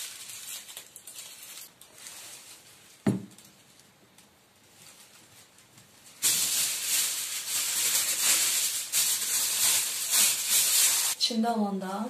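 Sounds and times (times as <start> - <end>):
material rustling and crinkling: 0.0 - 11.2.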